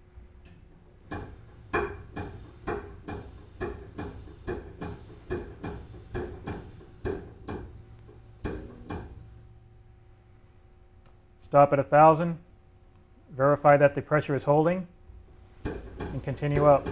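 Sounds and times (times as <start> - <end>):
test pump clacking: 1.0 - 9.4, 15.3 - 16.9.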